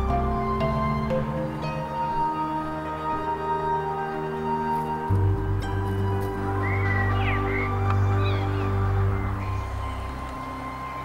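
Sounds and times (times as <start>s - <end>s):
sustained chords over low bass: 0.0s - 11.0s.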